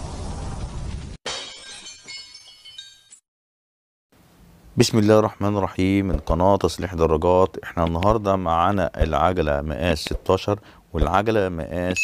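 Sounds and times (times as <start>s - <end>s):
glass shattering effect: 1.3s - 3.2s.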